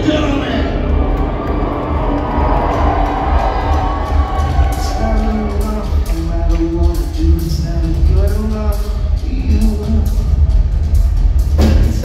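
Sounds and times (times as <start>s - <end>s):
crowd cheering: 0.0s - 7.6s.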